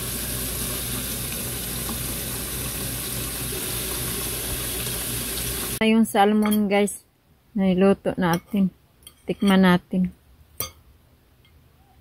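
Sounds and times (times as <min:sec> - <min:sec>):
metal fork clinking on plate: 0:06.4 - 0:06.6, 0:10.6 - 0:10.8.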